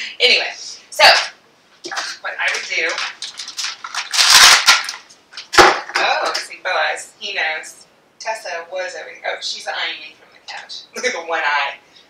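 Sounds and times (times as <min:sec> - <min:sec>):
plastic bag crinkling: 0:01.9 - 0:06.4.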